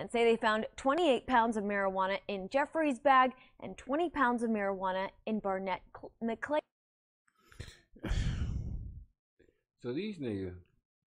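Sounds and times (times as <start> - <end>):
man sighing: 7.6 - 9.1.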